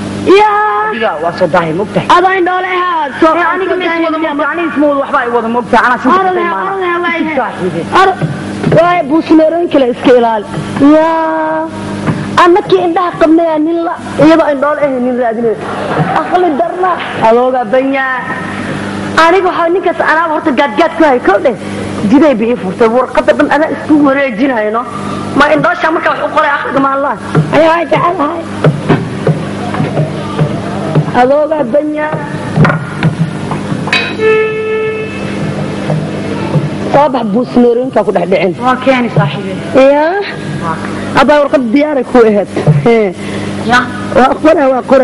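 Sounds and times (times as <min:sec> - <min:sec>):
faint electrical hum: 0:00.0 - 0:45.0.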